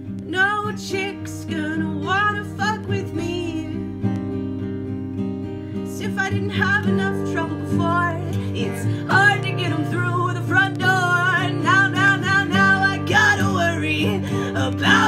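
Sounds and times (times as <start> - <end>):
acoustic guitar strumming: 0.0 - 15.0
woman singing: 0.1 - 4.2, 5.8 - 15.0.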